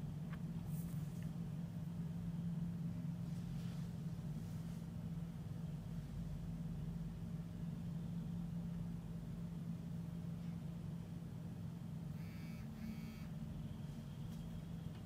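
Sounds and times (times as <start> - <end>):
low background hum: 0.0 - 15.0
buzzy high-pitched chirps: 12.2 - 13.3.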